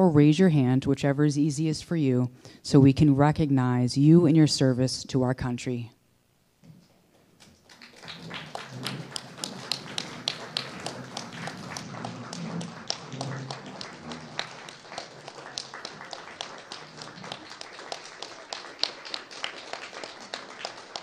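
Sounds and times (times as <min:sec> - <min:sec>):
crowd applauding: 0:07.4 - 0:21.0.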